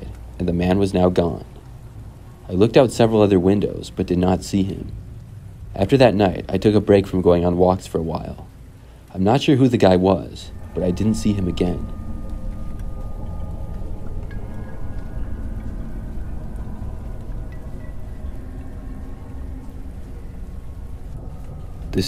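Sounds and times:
faint held musical tones: 0.0 - 22.0
steady rain: 0.0 - 22.0.

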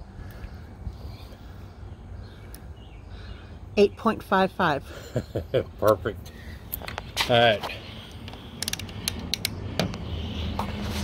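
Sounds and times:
plastic clicks: 8.3 - 10.0.

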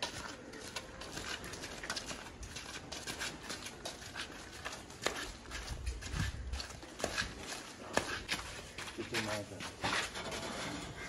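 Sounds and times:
footsteps: 0.0 - 11.0.

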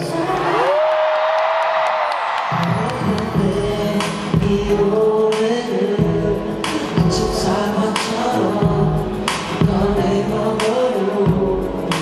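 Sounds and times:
crowd screaming and cheering: 0.0 - 4.8
live pop music over sound system: 0.0 - 12.0.

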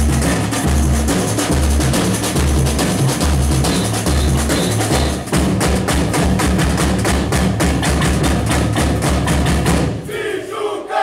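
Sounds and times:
deep bass drums: 0.0 - 8.5
snare drums fast rhythm: 0.0 - 10.1
people shouting: 10.1 - 11.0.

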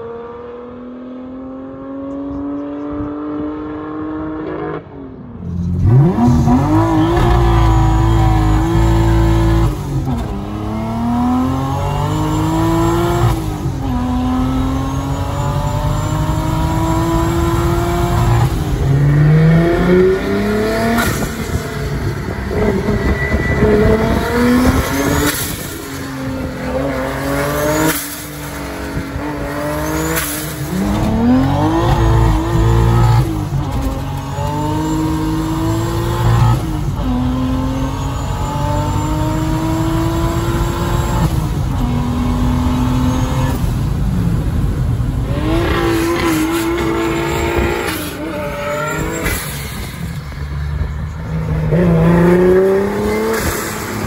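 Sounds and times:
car engine accelerating hard: 5.5 - 54.0.

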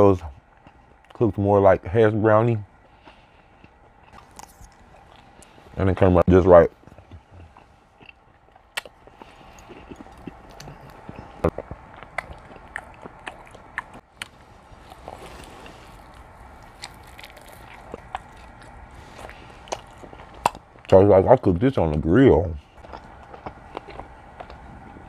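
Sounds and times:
man chewing and biting meat: 2.8 - 5.8, 6.8 - 21.0, 22.7 - 25.0.

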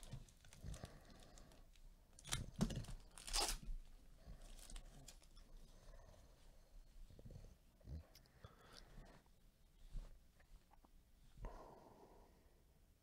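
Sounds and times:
foil crinkling: 2.2 - 3.7
foil wrapper ripping: 2.2 - 3.7.

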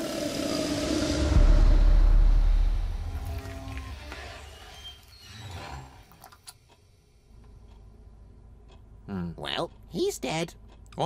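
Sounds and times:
deep rumble: 0.0 - 4.6.

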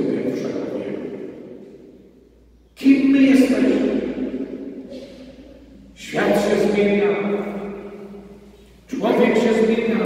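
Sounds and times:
man speaking in reverberant church: 0.0 - 10.0.

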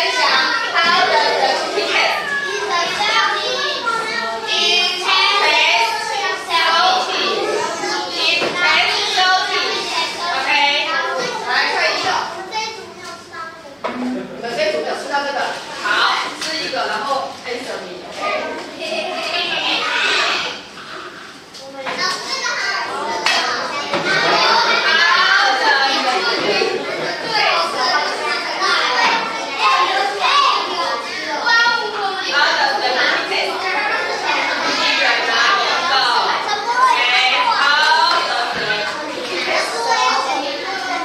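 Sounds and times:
children chattering: 0.0 - 41.0.

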